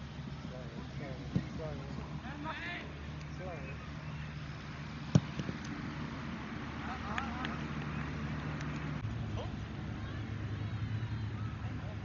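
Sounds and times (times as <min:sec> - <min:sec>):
football kicked thud: 0:05.1 - 0:05.6.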